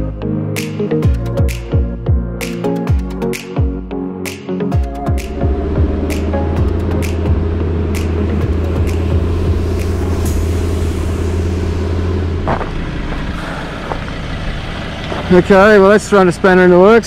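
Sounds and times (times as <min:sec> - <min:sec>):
vehicle engine and tyre rumble: 0:04.8 - 0:17.0.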